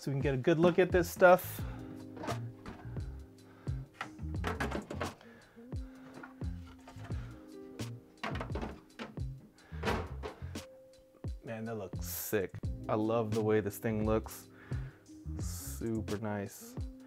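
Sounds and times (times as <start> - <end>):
background music with bass line: 0.0 - 17.0
plastic dust covers clacking: 2.1 - 3.0, 3.9 - 5.2, 8.2 - 10.6.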